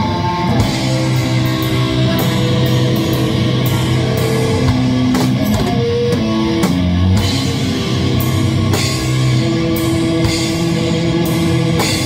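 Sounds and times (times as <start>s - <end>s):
drum kit: 0.0s - 12.0s
heavy electric guitar riff: 0.0s - 12.0s.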